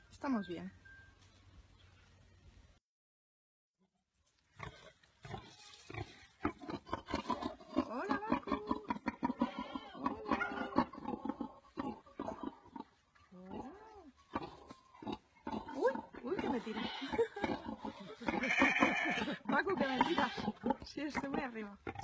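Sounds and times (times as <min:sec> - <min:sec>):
pig crunching feed: 0:04.6 - 0:07.6
pig grunting: 0:04.6 - 0:22.0.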